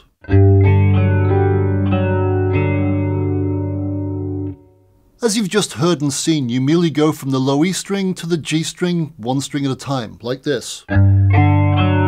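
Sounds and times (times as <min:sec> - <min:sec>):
electric guitar picking a chord: 0:00.2 - 0:04.8, 0:10.9 - 0:12.0.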